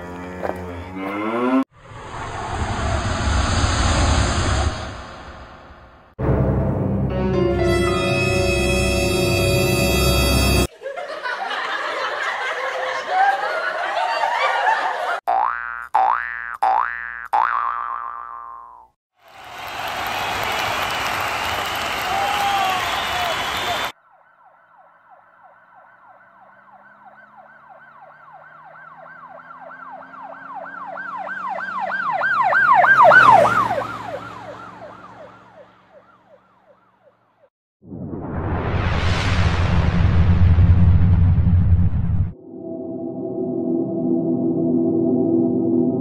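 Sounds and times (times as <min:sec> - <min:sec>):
dense noisy rush: 0:01.8 - 0:06.1, 0:37.9 - 0:46.0
warbling siren passing by: 0:23.9 - 0:38.7, 0:42.1 - 0:46.0.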